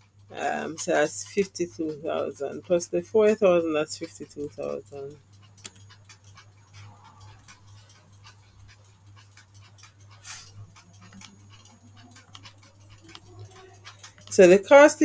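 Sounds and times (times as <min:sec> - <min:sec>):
computer keys typing: 0:00.0 - 0:15.0.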